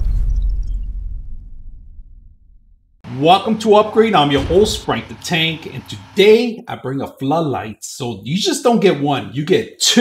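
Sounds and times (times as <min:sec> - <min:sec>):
deep rumbling boom tail: 0:00.0 - 0:03.0, 0:04.2 - 0:06.2.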